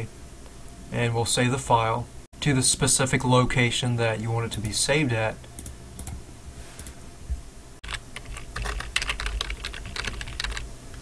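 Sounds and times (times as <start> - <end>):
computer keyboard typing: 7.8 - 11.0.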